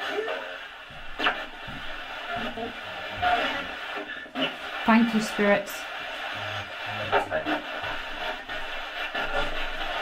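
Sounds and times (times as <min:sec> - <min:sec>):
broken radio voices and music: 0:00.0 - 0:10.0
radio static hiss: 0:00.0 - 0:10.0.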